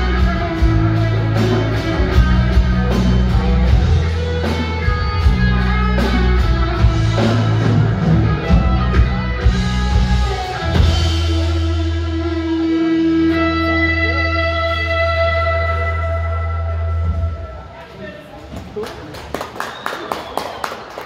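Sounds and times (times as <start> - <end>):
scattered claps: 18.5 - 21.0.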